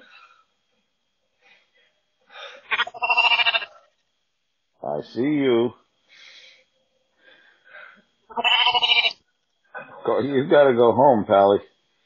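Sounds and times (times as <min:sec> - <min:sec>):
lamb bleating: 0:02.6 - 0:03.7, 0:08.3 - 0:09.2
man speaking: 0:04.8 - 0:05.8, 0:09.8 - 0:11.6.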